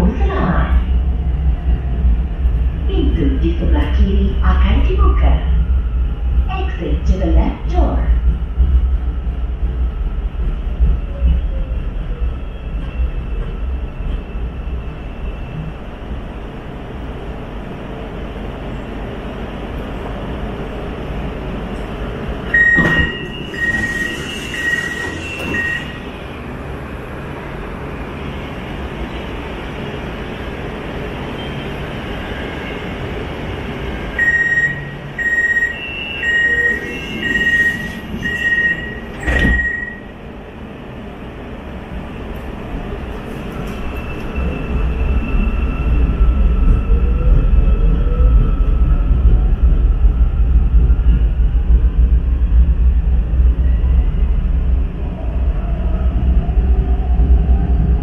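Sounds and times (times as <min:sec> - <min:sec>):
train low rumble: 0:00.0 - 0:58.0.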